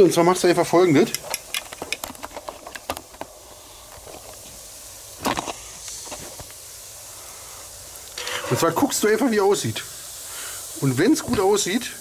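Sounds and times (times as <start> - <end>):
meat sizzling on grill: 0.0 - 12.0
tongs clacking: 1.1 - 2.9, 8.2 - 9.0
tongs clicking and scraping on grate: 8.2 - 9.0.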